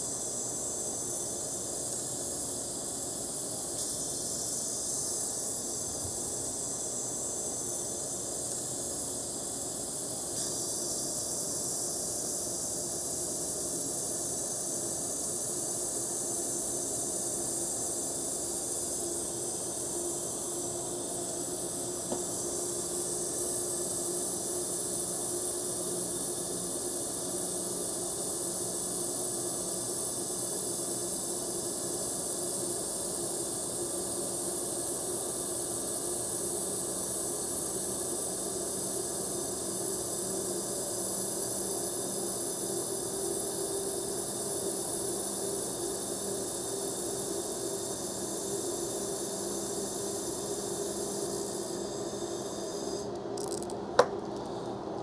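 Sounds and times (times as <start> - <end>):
laser welder hiss: 0.0 - 54.7.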